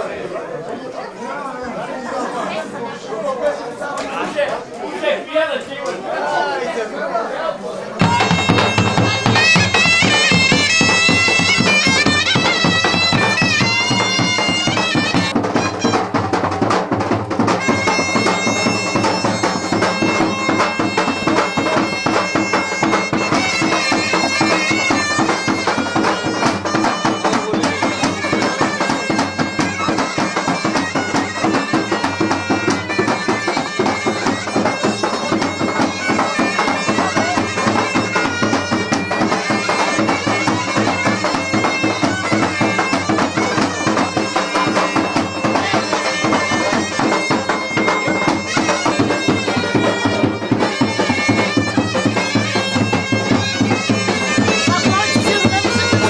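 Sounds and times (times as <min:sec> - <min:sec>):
bagpipe playing folk tune: 0:08.0 - 0:56.0.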